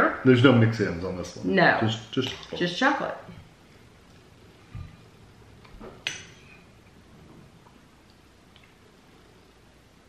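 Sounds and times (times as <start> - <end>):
metal spoon clinking glass bowl: 2.2 - 2.7.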